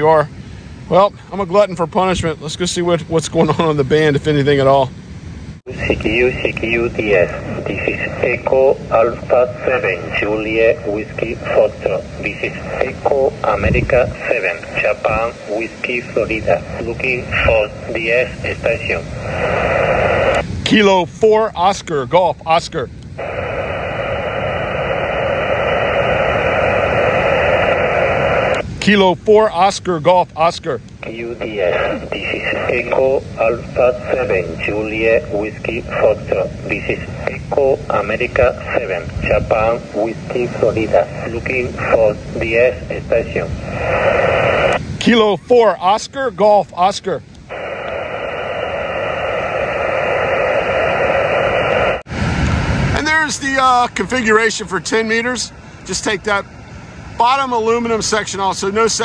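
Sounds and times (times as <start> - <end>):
radio static hiss: 0.0 - 59.0.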